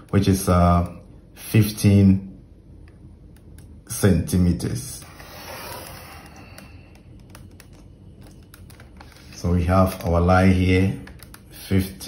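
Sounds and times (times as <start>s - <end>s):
pencil clicks and taps: 6.6s - 9.1s, 11.0s - 11.5s.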